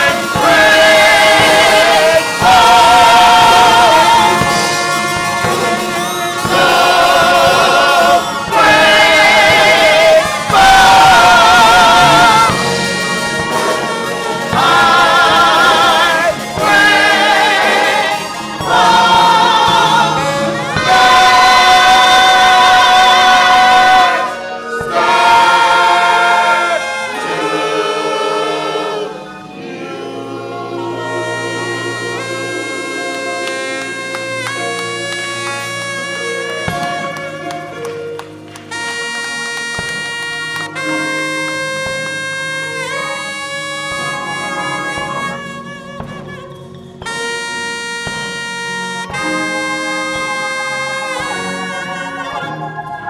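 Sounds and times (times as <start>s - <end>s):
gospel choir singing: 0.0s - 39.0s, 39.8s - 53.0s
live band with horn: 0.0s - 53.0s
saxophone long notes: 0.0s - 53.0s.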